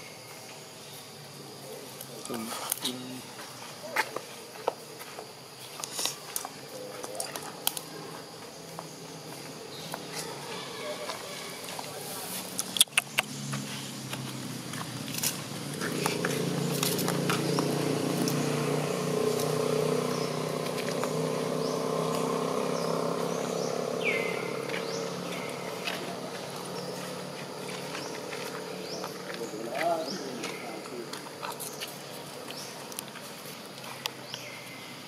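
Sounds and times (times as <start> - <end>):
steady background noise: 0.0 - 35.0
sharp clicks: 12.5 - 13.4.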